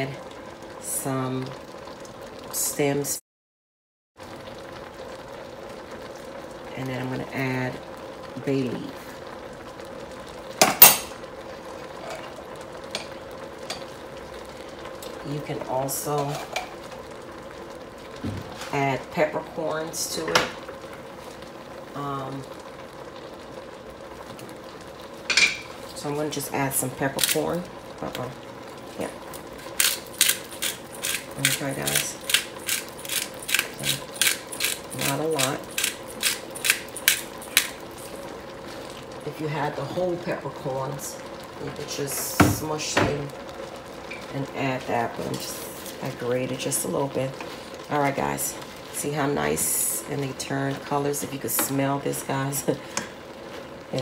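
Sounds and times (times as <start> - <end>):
shrimp shells sizzling in oil: 4.2 - 54.0
kitchenware clanking: 25.3 - 25.8
pepper grinder grinding: 29.7 - 38.2.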